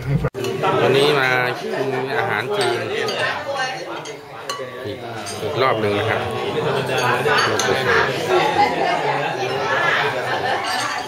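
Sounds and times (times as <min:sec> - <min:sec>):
ladle clinking against china bowls: 0:02.1 - 0:06.0, 0:06.7 - 0:08.1.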